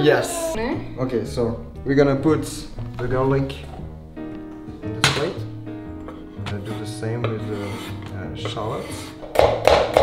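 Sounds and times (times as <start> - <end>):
background music with held notes: 0.0 - 10.0
knife scraping cutting board: 6.1 - 9.2.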